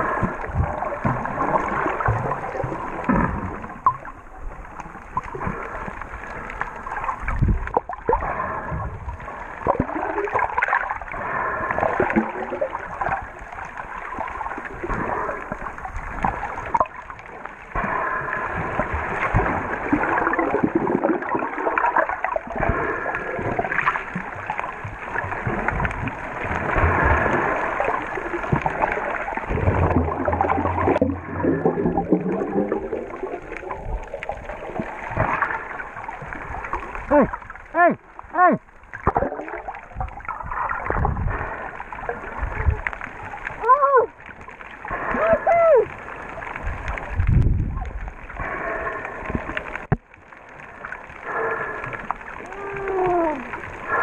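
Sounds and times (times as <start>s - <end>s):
underwater churning water and bubbles: 0.0s - 54.0s.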